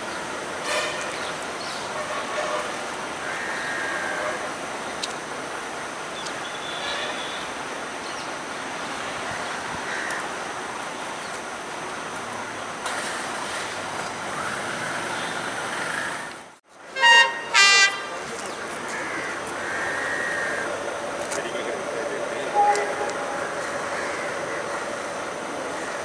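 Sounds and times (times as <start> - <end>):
train track noise: 0.0 - 26.0
train horn blasts: 0.6 - 1.2, 1.9 - 2.9, 4.0 - 4.6, 16.9 - 18.3, 22.0 - 25.5.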